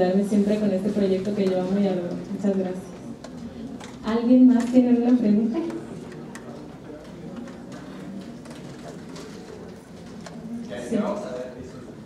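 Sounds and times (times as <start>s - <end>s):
quiet indistinct voices: 1.4s - 12.0s.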